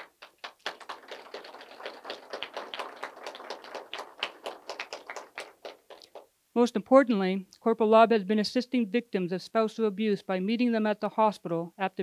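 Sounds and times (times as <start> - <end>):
people clapping: 0.0 - 6.3.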